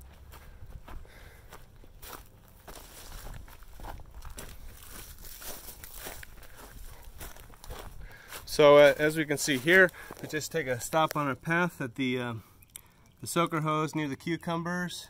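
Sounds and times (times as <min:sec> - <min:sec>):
soft footsteps: 0:00.0 - 0:11.3.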